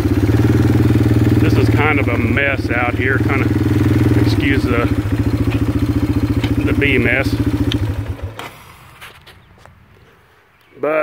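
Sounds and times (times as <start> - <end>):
four-wheeler engine idling: 0.0 - 9.7.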